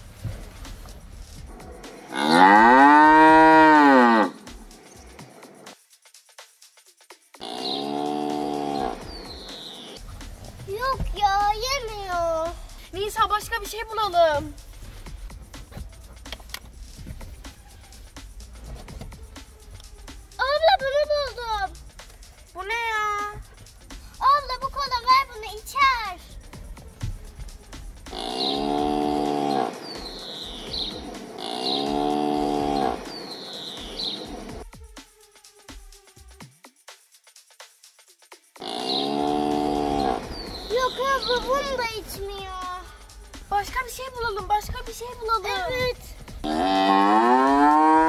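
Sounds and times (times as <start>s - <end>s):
cow mooing: 2.1s - 4.4s, 7.4s - 9.0s, 28.1s - 29.8s, 31.4s - 33.1s, 38.6s - 40.3s, 46.4s - 48.0s.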